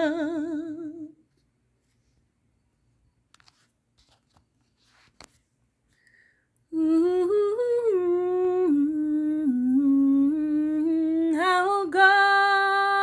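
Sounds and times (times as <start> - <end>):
woman singing wordless melody: 0.0 - 1.2, 6.7 - 13.0.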